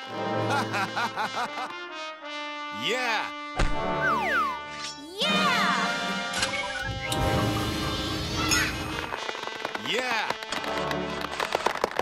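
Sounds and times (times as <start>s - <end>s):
children's background music: 3.0s - 10.3s.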